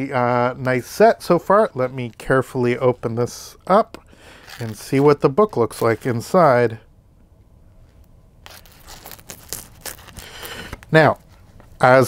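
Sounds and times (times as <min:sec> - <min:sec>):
plastic wrapping tearing and crinkling: 0:04.4 - 0:06.1, 0:08.4 - 0:11.1.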